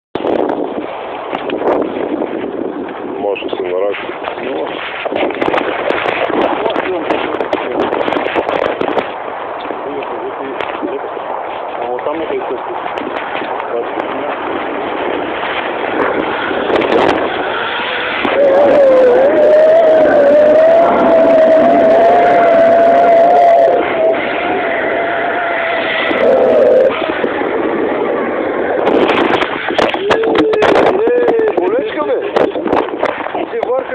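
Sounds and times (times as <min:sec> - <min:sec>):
sharp crackles and clicks: 0:00.2 - 0:24.6, 0:25.7 - 0:33.9
zipline trolley rushing on cable: 0:10.4 - 0:33.9.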